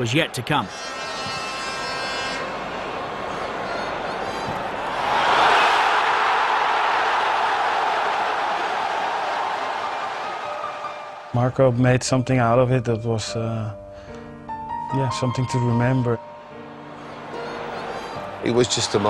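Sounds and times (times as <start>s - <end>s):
stadium crowd cheering: 0.0s - 11.3s, 17.1s - 19.0s.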